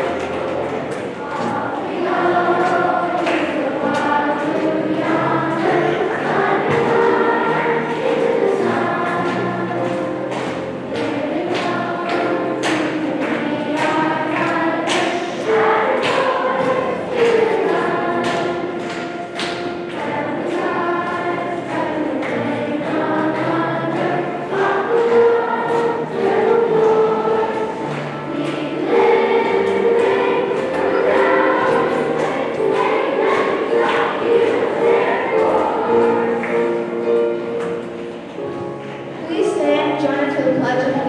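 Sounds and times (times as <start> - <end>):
accompaniment with steady beat: 0.0 - 38.9
children's choir singing: 0.0 - 41.0.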